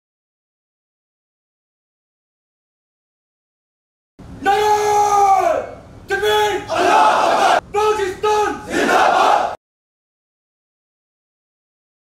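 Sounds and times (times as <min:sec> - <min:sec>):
person shouting long calls: 0:04.4 - 0:07.1
group shouting in unison: 0:06.7 - 0:07.6, 0:08.6 - 0:09.6.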